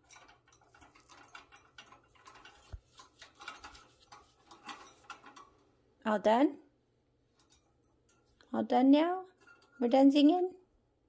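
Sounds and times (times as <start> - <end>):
bird clicking and tapping on cage: 0.0 - 5.5.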